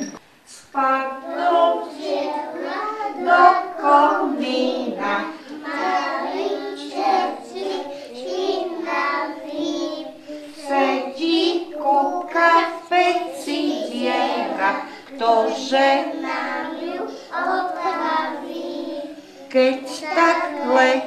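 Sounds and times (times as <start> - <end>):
young children singing: 0.0 - 21.0.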